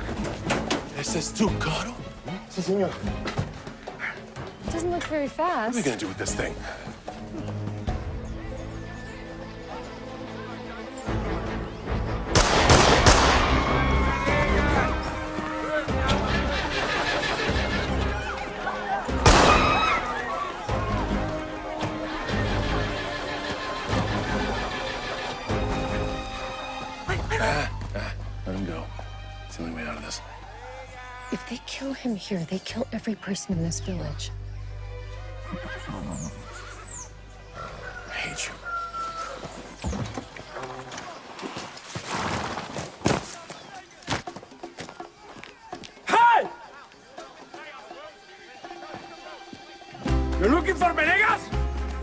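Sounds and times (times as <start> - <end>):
dramatic score music: 0.0 - 40.2, 47.8 - 52.0
gunshots: 12.3 - 13.6, 19.2 - 20.0
people shouting: 13.1 - 16.7, 17.6 - 26.3, 30.2 - 32.1, 44.9 - 49.4
horse whinnying: 22.0 - 26.1, 35.4 - 37.1.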